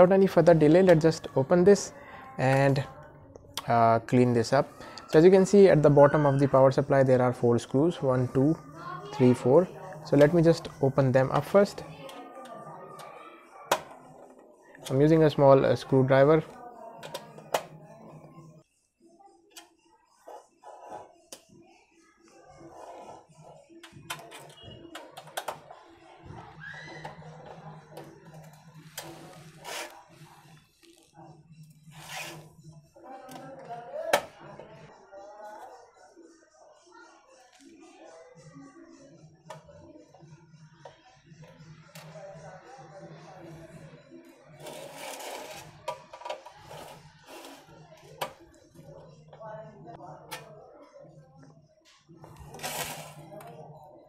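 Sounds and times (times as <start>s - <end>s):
faint voices: 0.0s - 54.0s.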